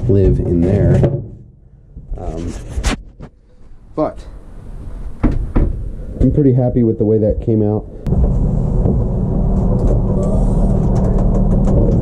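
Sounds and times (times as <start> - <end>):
low mechanical drone: 3.7 - 12.0.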